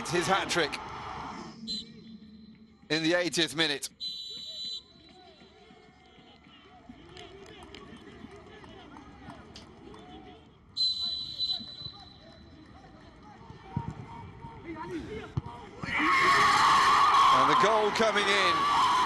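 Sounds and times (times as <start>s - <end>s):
referee's whistle: 1.7s - 2.2s, 3.9s - 5.6s, 10.8s - 12.6s
players shouting: 13.5s - 19.0s
loud shouting: 15.8s - 19.0s.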